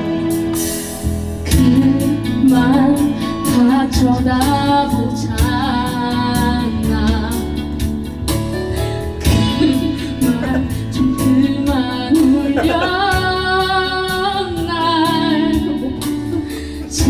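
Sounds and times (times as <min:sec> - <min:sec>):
woman singing into microphone: 0:00.0 - 0:08.0, 0:09.2 - 0:17.0
karaoke backing track: 0:00.0 - 0:17.0.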